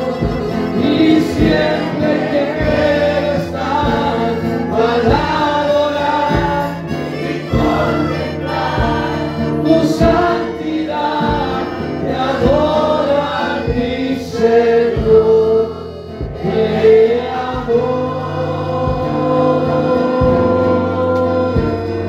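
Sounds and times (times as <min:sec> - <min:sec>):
amplified instrumental accompaniment: 0:00.0 - 0:22.0
congregation singing: 0:00.0 - 0:22.0
low beat: 0:00.0 - 0:22.0.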